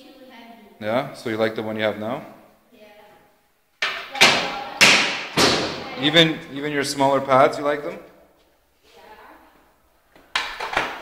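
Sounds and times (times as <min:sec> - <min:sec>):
thumps: 0:03.8 - 0:06.0.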